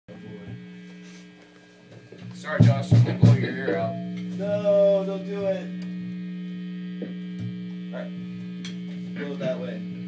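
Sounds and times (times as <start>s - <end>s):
amplifier mains hum: 0.1s - 10.0s.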